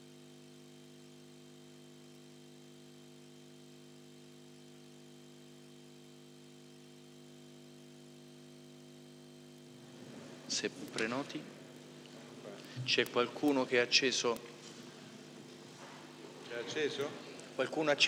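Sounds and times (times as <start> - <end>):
faint electrical hum: 0.0 - 18.0.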